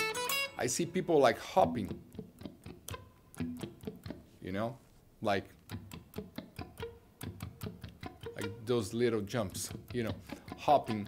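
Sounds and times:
electric guitar picked notes: 0.0 - 4.2, 5.6 - 11.0
guitar pick clicks: 1.7 - 4.2, 5.5 - 11.0.

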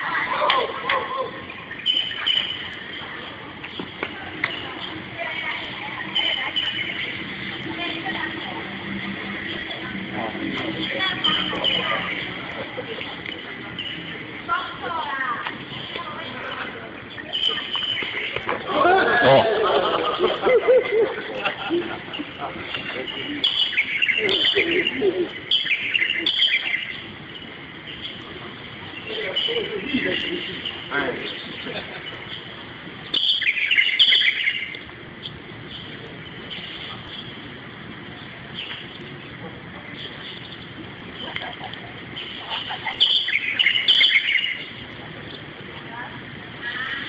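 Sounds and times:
steady background hiss: 0.0 - 47.0
small birds chirping: 22.1 - 37.5, 42.0 - 47.0.

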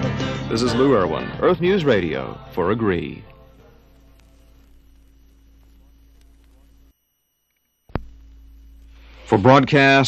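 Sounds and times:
record surface noise: 0.0 - 10.0
stylus click on record: 2.9 - 9.0
low hum: 3.2 - 9.6.

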